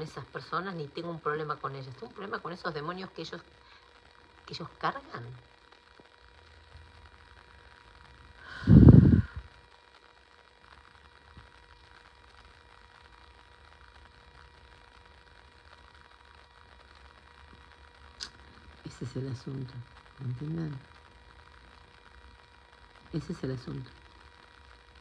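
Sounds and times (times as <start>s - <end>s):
low hum: 0.0s - 9.6s
breath blowing on microphone: 8.4s - 9.5s.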